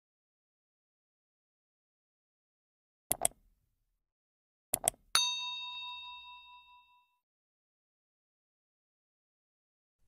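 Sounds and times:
bell-like chime ding: 0:05.2 - 0:07.2.

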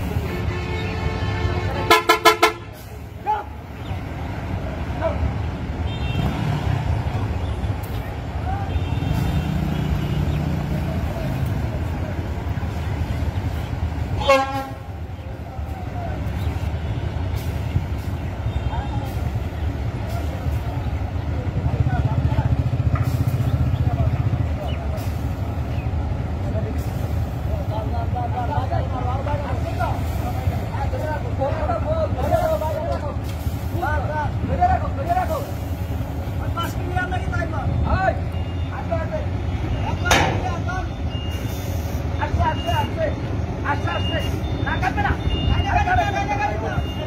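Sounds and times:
bus diesel engine rumbling: 0:00.0 - 0:47.0
voices calling out: 0:00.0 - 0:47.0.

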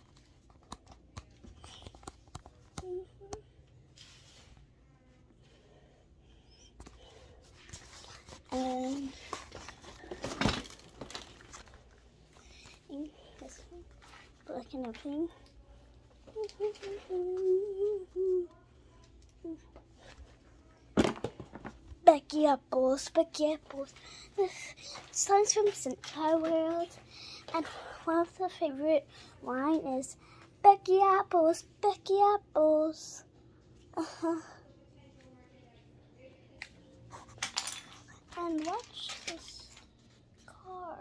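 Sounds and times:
girl humming a tune: 0:02.8 - 0:03.6, 0:16.2 - 0:19.8.

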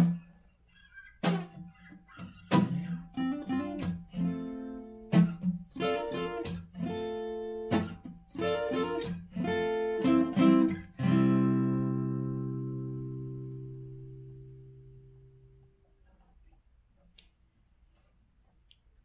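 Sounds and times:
acoustic guitar: 0:00.0 - 0:16.2.

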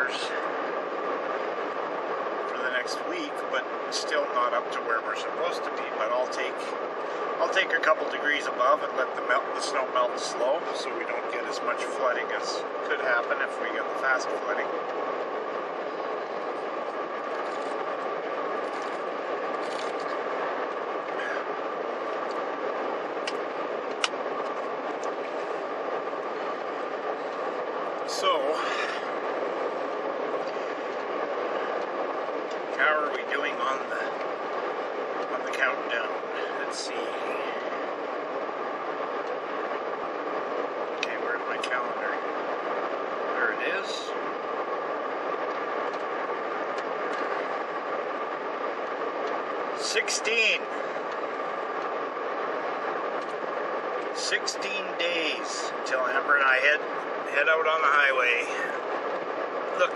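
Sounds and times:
car engine and road rumble: 0:00.0 - 0:44.7, 0:45.3 - 0:59.9
faint steady whine: 0:00.0 - 0:59.9.

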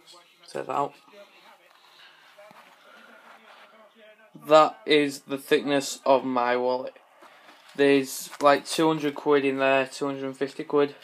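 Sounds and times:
faint voices: 0:00.0 - 0:09.1.

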